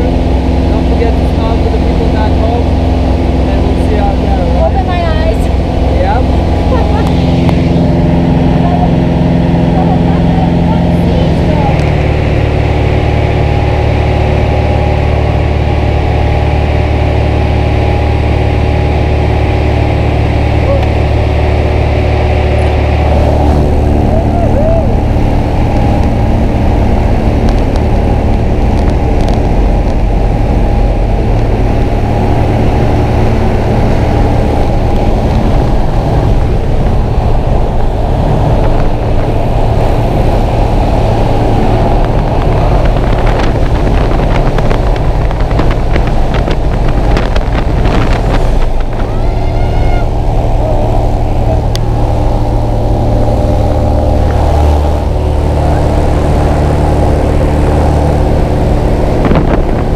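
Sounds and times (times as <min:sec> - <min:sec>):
small plane engine droning: 0:00.0 - 0:59.9.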